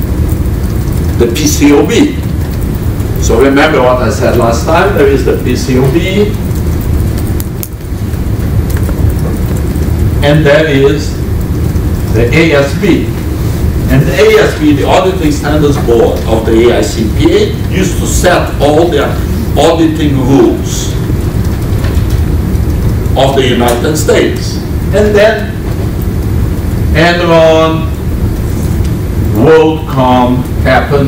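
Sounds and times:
classroom room noise rumble: 0.0s - 31.0s.

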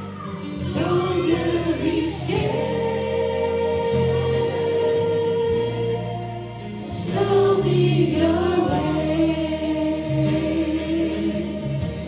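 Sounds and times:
women singing worship song: 0.0s - 12.0s.

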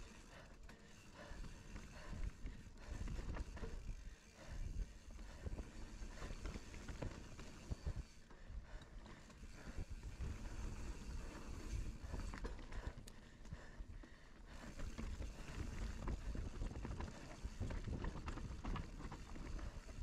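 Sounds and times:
bike tyres on dirt trail: 0.0s - 20.0s
bike rattling and knocking: 0.7s - 8.2s, 14.6s - 20.0s.

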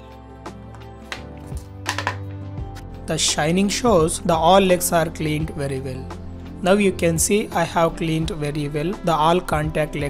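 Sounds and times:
background music: 0.0s - 10.0s
knocks and taps on table: 1.1s - 2.2s.

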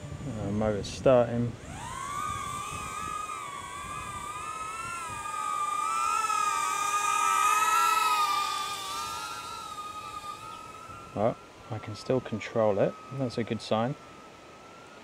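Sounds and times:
drone propellers whining: 0.0s - 15.0s.

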